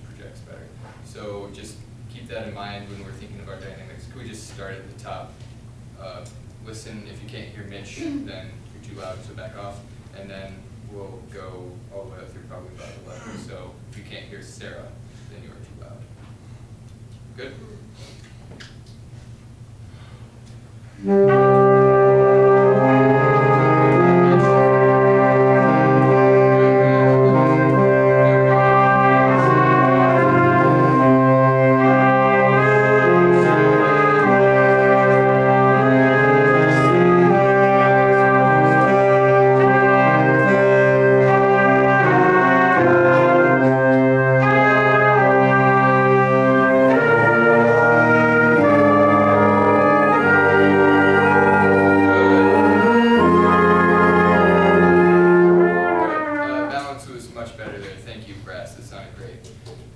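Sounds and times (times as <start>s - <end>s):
brass ensemble playing chords: 20.8s - 58.1s.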